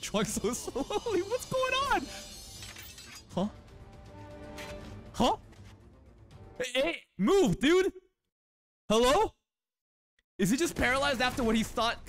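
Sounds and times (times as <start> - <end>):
background music: 0.0 - 8.0.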